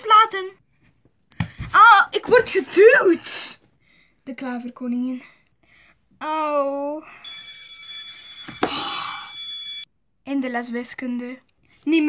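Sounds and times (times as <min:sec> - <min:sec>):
electric bell ringing: 0:07.2 - 0:09.8.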